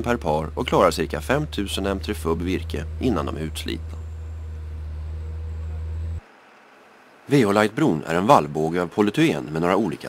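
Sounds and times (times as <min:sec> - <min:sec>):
forwarder engine low drone: 0:00.0 - 0:06.3.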